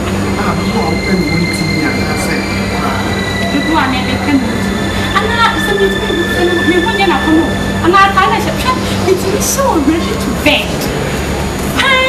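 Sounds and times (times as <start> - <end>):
high constant whine: 0.0 - 12.0
low hum: 0.0 - 12.0
man and woman talking: 0.3 - 11.0.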